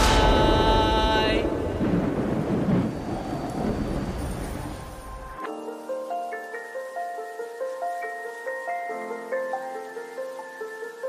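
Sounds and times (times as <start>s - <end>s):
low rumble of thunder: 0.0s - 5.4s
rain: 0.0s - 11.0s.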